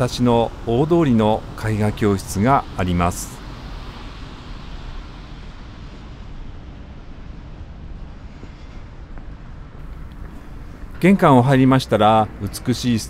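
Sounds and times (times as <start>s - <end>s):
distant traffic rumble: 0.0s - 13.0s.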